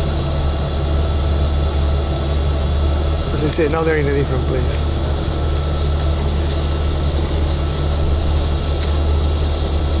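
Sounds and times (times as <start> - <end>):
bus engine and road drone: 0.0 - 10.0.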